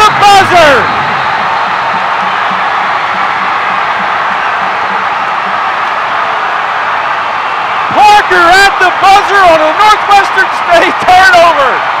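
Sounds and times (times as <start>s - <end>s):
arena crowd cheering: 0.0s - 12.0s
music: 0.9s - 6.4s.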